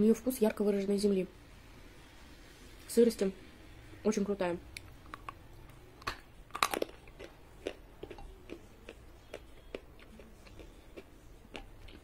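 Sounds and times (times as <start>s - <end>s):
chewing with small crunches: 4.8s - 12.0s
crunchy bite: 6.0s - 8.6s.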